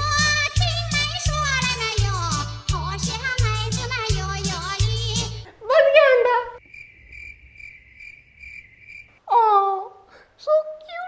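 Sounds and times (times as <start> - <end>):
cricket chirping: 6.6 - 9.2.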